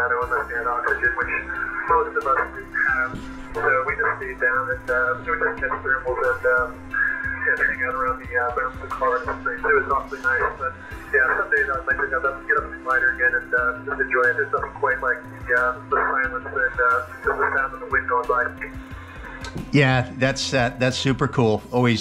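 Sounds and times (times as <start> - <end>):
man speaking over radio: 0.0 - 6.7, 7.4 - 18.7
steady radio tone: 0.0 - 19.4.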